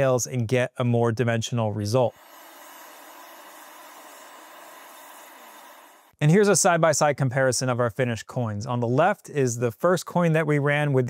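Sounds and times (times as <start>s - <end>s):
laser engraving hiss and whine: 2.1s - 6.2s.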